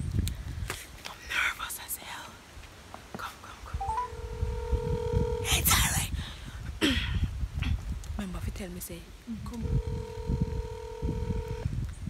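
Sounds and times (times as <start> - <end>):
phone ringback tone: 3.8 - 5.5, 9.6 - 11.7.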